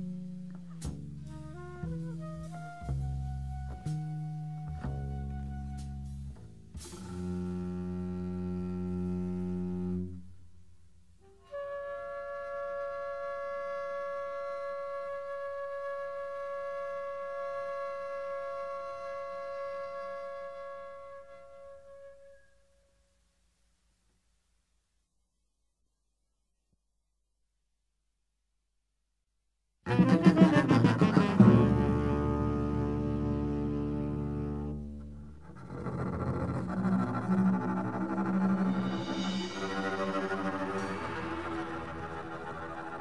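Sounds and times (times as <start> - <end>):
free jazz low sustained notes: 0.0 - 22.1, 29.9 - 43.0
long held flute note: 11.2 - 22.9.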